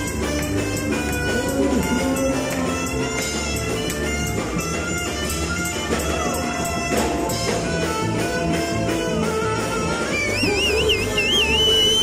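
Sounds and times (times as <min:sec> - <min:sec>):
bass: 0:00.0 - 0:12.0
saxophone: 0:00.0 - 0:12.0
trumpet: 0:00.0 - 0:12.0.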